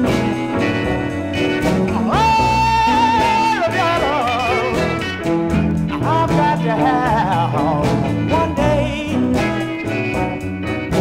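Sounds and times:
electric blues band: 0.0s - 11.0s.

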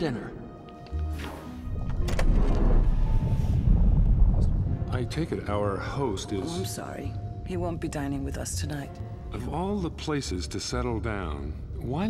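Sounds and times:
deep rumble of flowing lava: 2.2s - 5.9s.

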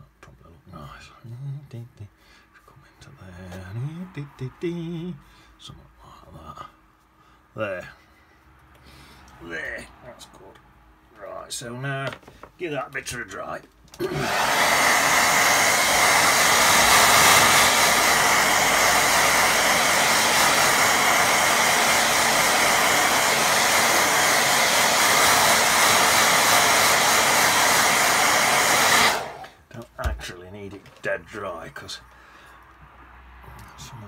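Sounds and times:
hair dryer running: 14.0s - 29.6s.

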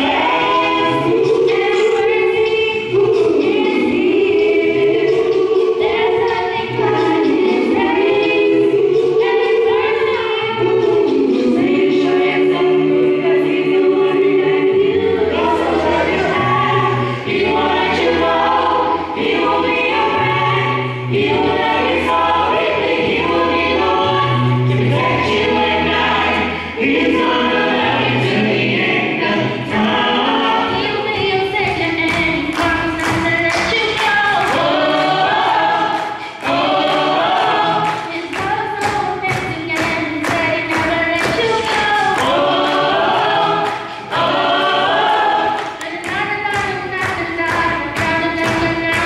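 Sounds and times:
sharp rhythmic beats: 0.0s - 49.0s
vocal group singing in harmony: 0.0s - 49.0s.

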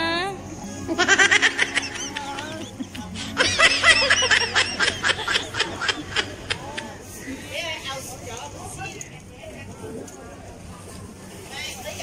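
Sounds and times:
high-pitched giggling: 0.8s - 6.9s.

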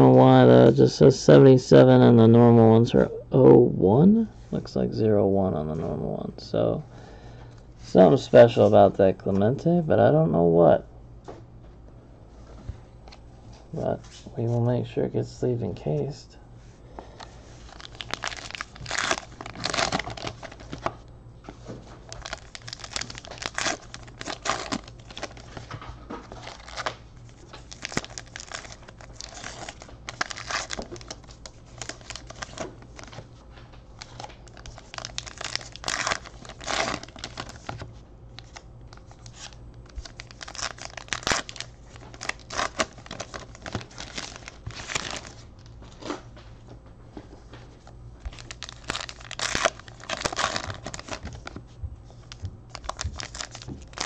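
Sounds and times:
wrappers crinkling and tearing: 17.2s - 33.2s, 34.0s - 46.2s, 48.2s - 54.0s.

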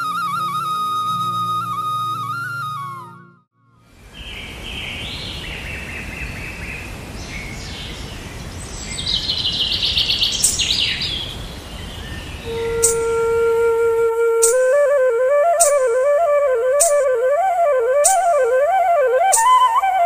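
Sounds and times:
flute long held note: 0.0s - 3.5s, 12.4s - 20.0s
birds chirping and calling: 4.2s - 13.1s
bird trill: 11.9s - 13.3s.

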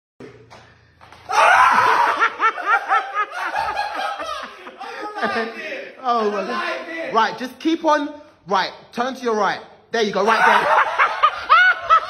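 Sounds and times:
person laughing: 10.3s - 12.0s.

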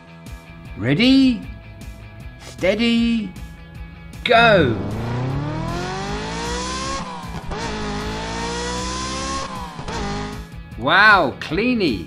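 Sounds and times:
race car engine revving: 4.4s - 10.5s.

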